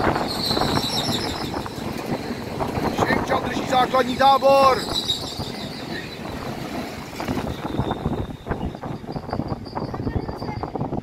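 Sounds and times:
train clicks and knocks: 0.0 - 11.0
train wheels rumbling on rails: 0.0 - 11.0.

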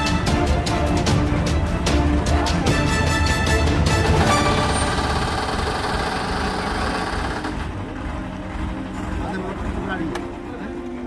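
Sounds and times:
men calling and talking: 6.9 - 11.0.

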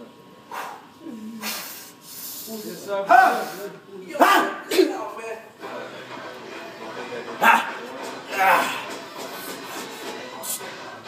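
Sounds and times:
person shouting: 8.3 - 8.8.

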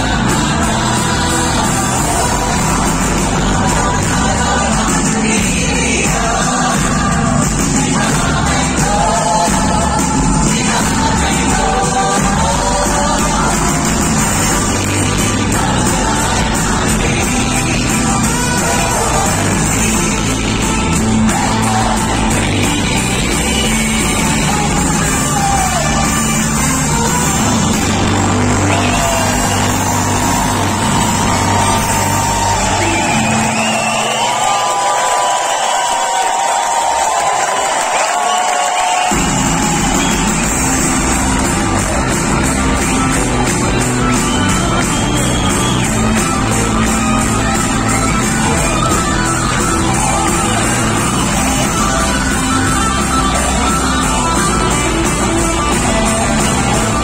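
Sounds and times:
crowd cheering: 0.0 - 57.0
live band music with singing: 0.0 - 57.0.

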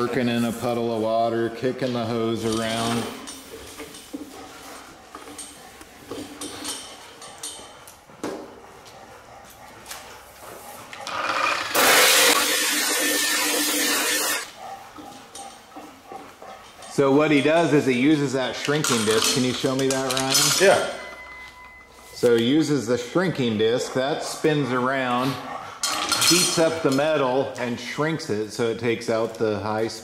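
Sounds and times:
angle grinder on sheet metal: 11.1 - 14.5
shop clatter: 18.5 - 22.6.

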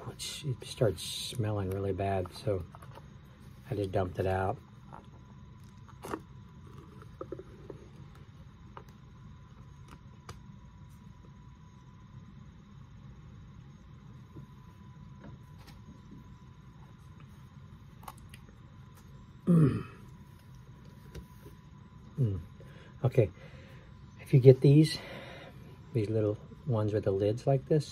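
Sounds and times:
steady low hum: 0.0 - 27.9.

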